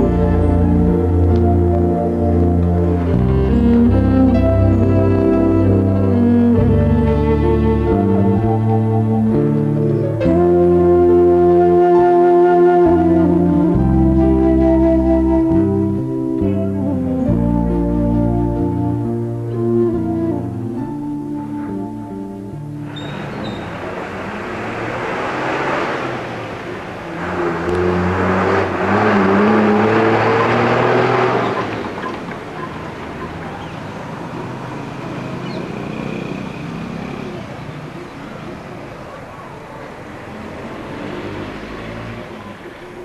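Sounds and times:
steady traffic noise: 0:00.0 - 0:43.0
motor vehicle passing close by: 0:22.8 - 0:43.0.

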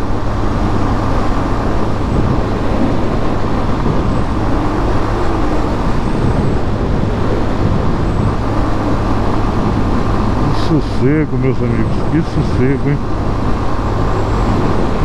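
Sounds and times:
motorcycle engine cruising: 0:00.0 - 0:15.0
road noise: 0:00.0 - 0:15.0
wind rush: 0:00.0 - 0:15.0.

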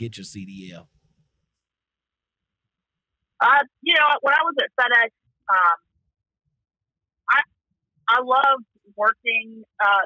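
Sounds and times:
person speaking: 0:00.0 - 0:00.8.

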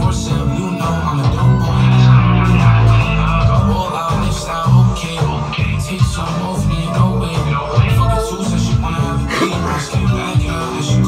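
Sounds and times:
rap song with deep bass: 0:00.0 - 0:11.0.

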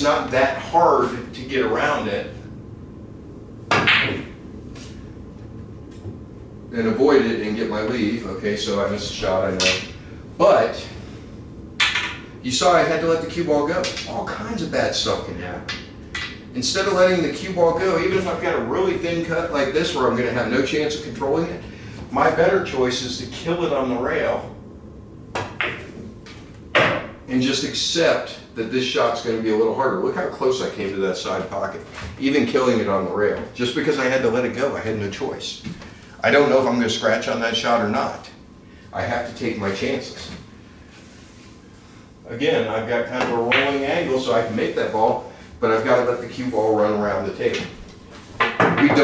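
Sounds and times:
ball knocking: 0:03.7 - 0:04.4, 0:11.8 - 0:12.2, 0:25.3 - 0:26.0
billiard balls clacking: 0:03.7 - 0:04.4, 0:11.8 - 0:12.4, 0:25.3 - 0:27.2, 0:43.2 - 0:44.0, 0:48.4 - 0:49.0
cue tip striking ball: 0:03.7 - 0:04.4, 0:11.8 - 0:12.3, 0:25.3 - 0:26.0, 0:26.8 - 0:27.2
billiard balls clicking: 0:11.8 - 0:12.3.

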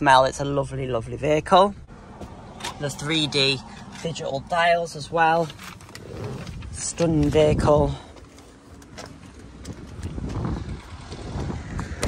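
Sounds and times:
handling clicks and knocks: 0:02.2 - 0:11.2
wind buffeting microphone: 0:04.9 - 0:12.0.

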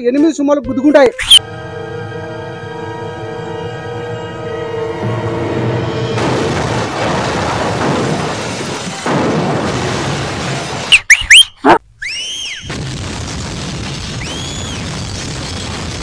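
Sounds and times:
whistling sound effects: 0:01.2 - 0:01.5, 0:10.9 - 0:12.7, 0:14.2 - 0:14.9
explosion rumble: 0:05.6 - 0:10.9, 0:12.6 - 0:16.0.

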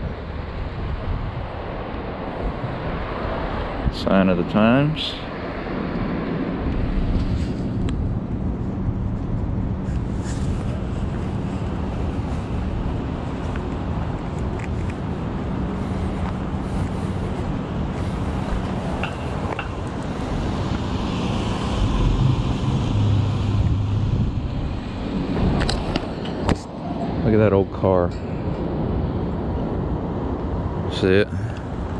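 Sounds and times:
traffic noise: 0:00.0 - 0:31.9
vehicle engine: 0:06.7 - 0:26.7.

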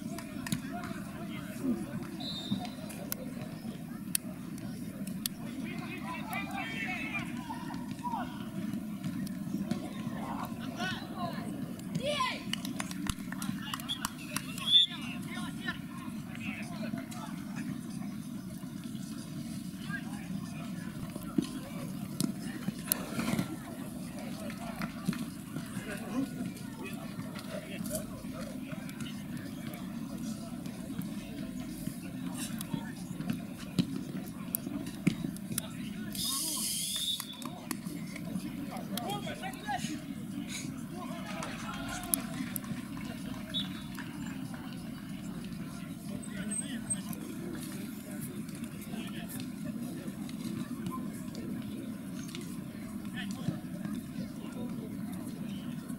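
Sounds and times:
players shouting: 0:05.5 - 0:08.8, 0:40.9 - 0:42.7.

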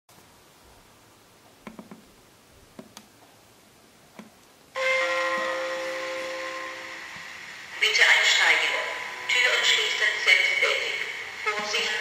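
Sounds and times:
multi-tone chime: 0:04.8 - 0:07.2.

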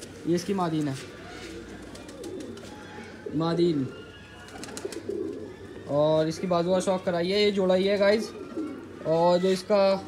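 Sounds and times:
pigeons cooing: 0:00.0 - 0:10.0.

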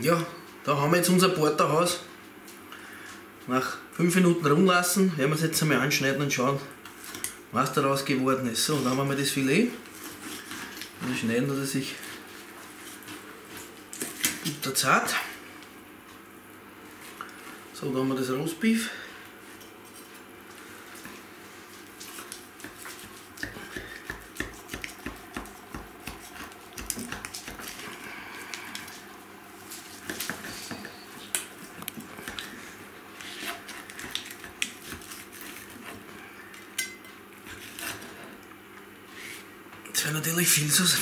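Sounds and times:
knife cutting strokes: 0:22.0 - 0:27.8.

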